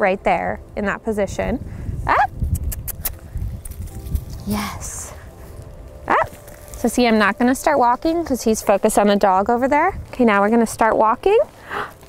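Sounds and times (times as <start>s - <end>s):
rustling: 3.1s - 12.0s.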